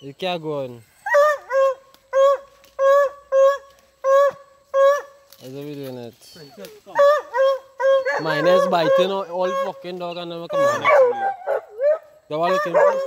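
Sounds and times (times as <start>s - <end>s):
dogs yelping: 1.0s - 5.2s, 6.9s - 13.0s.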